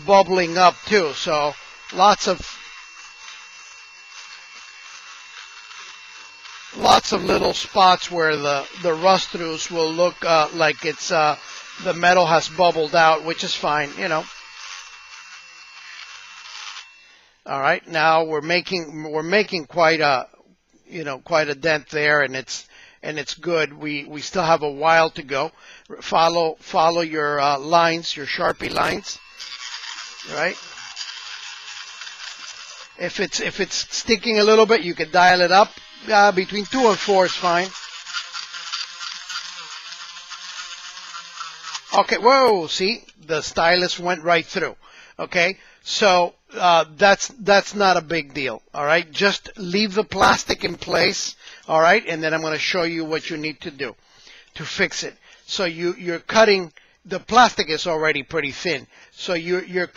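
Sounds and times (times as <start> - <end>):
rotary tool grinding plastic: 0.0 - 20.0, 24.2 - 59.9.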